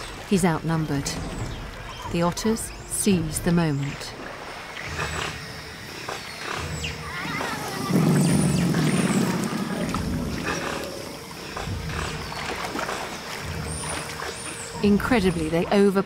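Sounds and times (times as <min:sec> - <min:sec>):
otters growling and snarling: 0:04.8 - 0:14.4.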